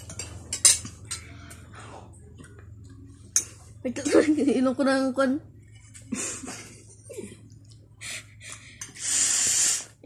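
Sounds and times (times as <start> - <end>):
metal spoons clinking on plates: 0.0 - 1.6
low hum: 0.0 - 9.0.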